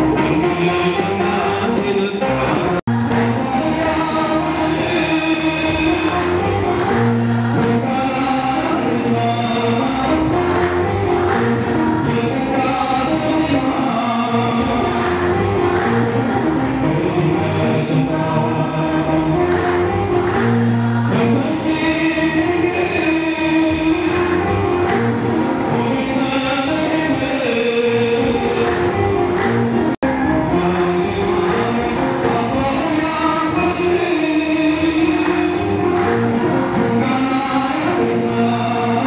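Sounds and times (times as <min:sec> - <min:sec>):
man singing into a microphone: 0:00.0 - 0:29.2, 0:30.0 - 0:39.0
choir singing a hymn: 0:00.0 - 0:39.0.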